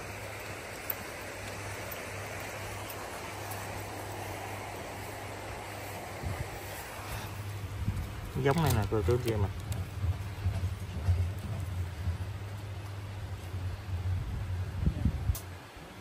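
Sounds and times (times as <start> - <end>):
churning water rushing: 0.0 - 16.0
low motor hum: 0.0 - 16.0.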